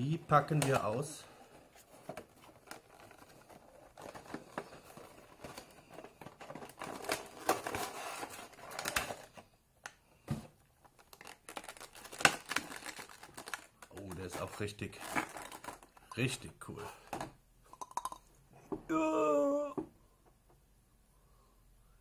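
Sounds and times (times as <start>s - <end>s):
cardboard and plastic rustling: 0.2s - 9.5s, 10.3s - 16.3s.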